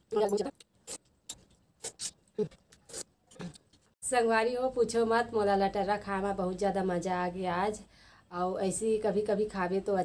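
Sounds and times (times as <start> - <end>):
mouth smacking and sucking: 0.5 - 3.8.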